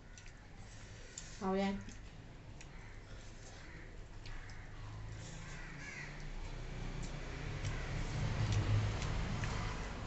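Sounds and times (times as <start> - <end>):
faint eating clicks: 0.0 - 10.0.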